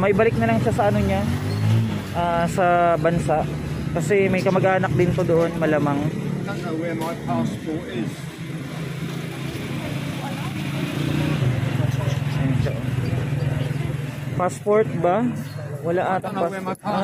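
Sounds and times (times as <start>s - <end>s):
vehicle engine droning: 0.0s - 17.0s.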